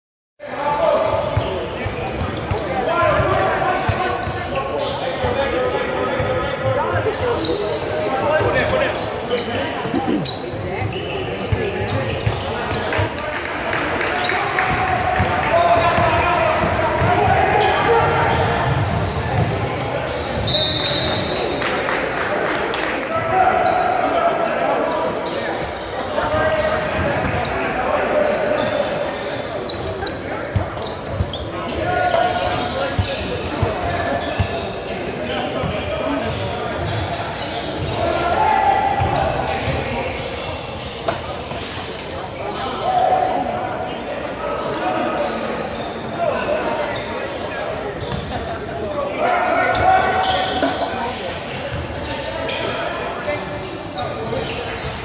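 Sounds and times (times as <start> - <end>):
people calling out and chatting: 2.6 - 13.0.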